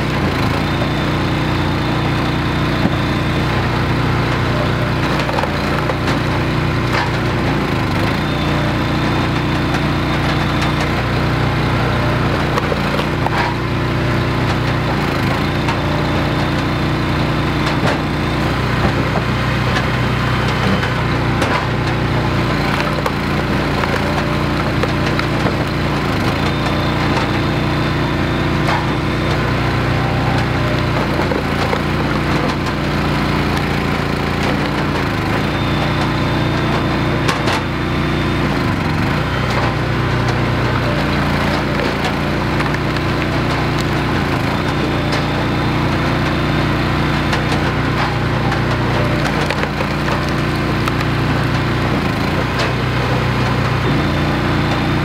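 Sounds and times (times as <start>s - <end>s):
gas engine running: 0.0s - 55.0s
wood cracking and splitting: 0.0s - 55.0s.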